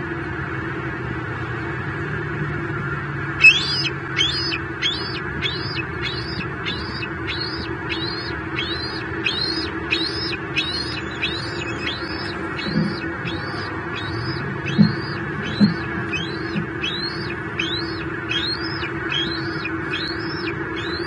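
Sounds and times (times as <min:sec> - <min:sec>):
low hum of road traffic: 0:00.0 - 0:21.0
bird calling high arching notes: 0:03.3 - 0:21.0.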